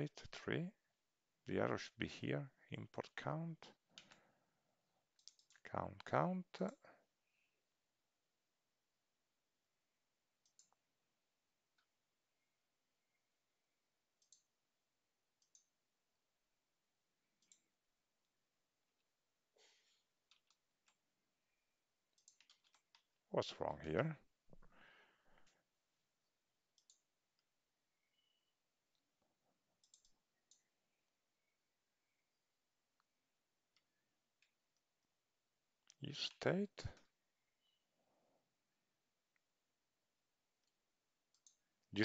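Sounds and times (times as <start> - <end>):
computer mouse clicks: 5.1 - 5.6, 10.4 - 10.8, 14.2 - 14.5, 15.4 - 15.8, 17.4 - 17.7, 20.2 - 21.0, 22.1 - 23.1, 26.7 - 27.5, 29.8 - 30.7, 40.6 - 41.7.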